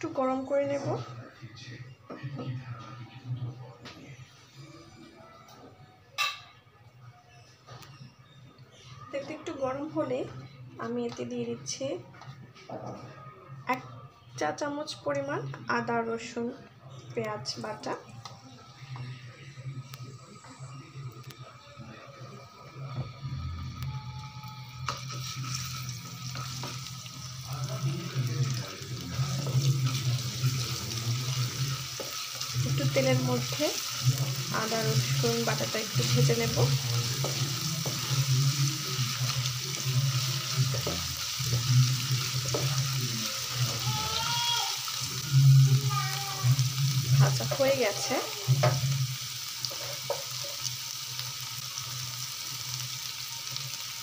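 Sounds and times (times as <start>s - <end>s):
oil sizzling in a pan: 24.1s - 54.0s
spatula stirring: 28.6s - 43.8s.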